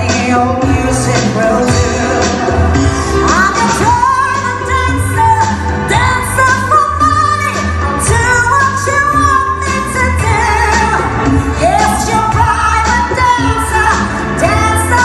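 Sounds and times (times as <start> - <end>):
instrumental backing with drum beat: 0.0 - 15.0
woman singing pop song: 0.0 - 15.0.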